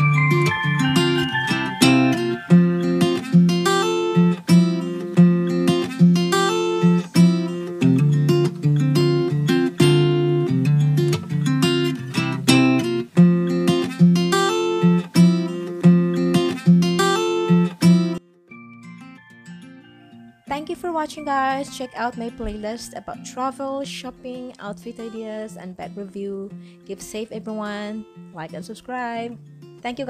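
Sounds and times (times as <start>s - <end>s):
strummed acoustic guitar: 0.0s - 30.0s.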